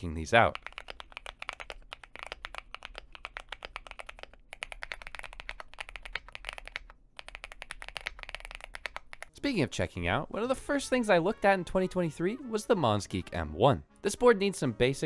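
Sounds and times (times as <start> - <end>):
mechanical keyboard typing: 0.4 - 9.4.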